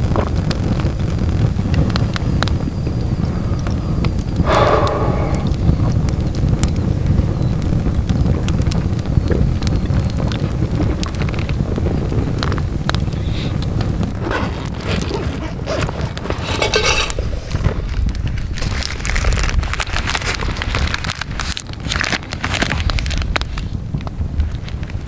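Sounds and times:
wind rumbling on microphone: 0.0s - 25.0s
wood fire crackling and popping: 0.0s - 25.0s.

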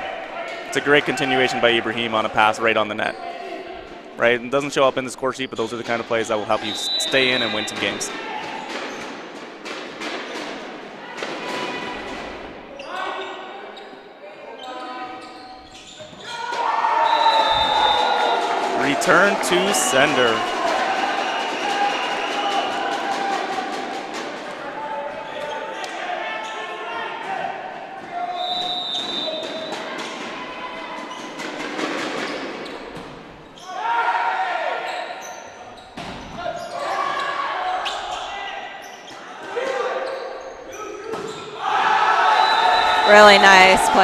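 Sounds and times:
players calling and shouting: 0.0s - 44.0s
shoe squeak: 6.7s - 8.1s, 12.7s - 18.2s, 34.8s - 41.6s.

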